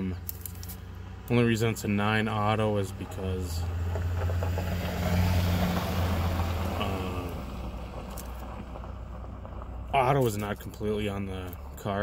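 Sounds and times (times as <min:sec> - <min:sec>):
car passing by: 0:03.0 - 0:09.3.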